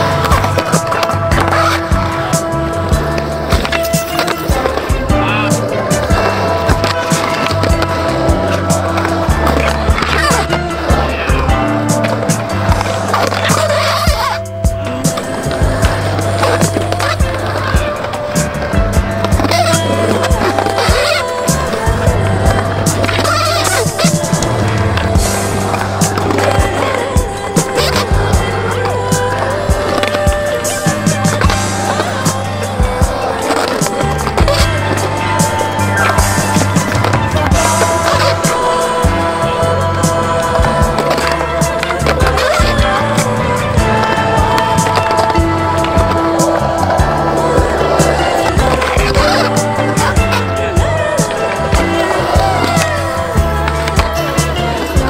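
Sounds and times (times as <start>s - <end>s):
music with blocky bass line: 0.0s - 55.0s
skateboard wheels rolling on concrete: 0.0s - 55.0s
skateboard clacks and impacts: 15.1s - 38.6s, 40.5s - 55.0s.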